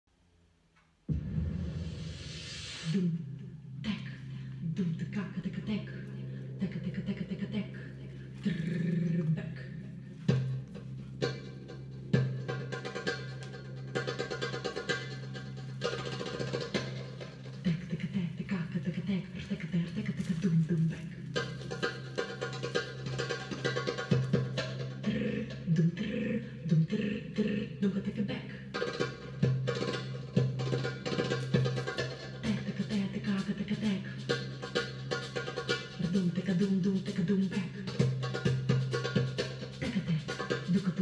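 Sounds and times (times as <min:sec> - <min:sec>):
steady low drone: 0:03.0 - 0:23.1
goblet drum rhythms: 0:05.3 - 0:41.0.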